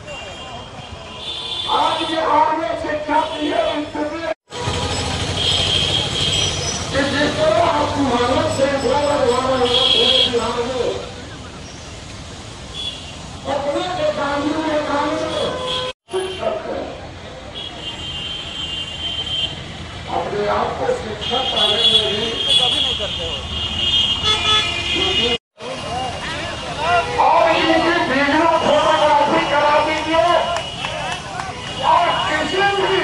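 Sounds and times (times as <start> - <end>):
road traffic hum: 0.0 - 33.0.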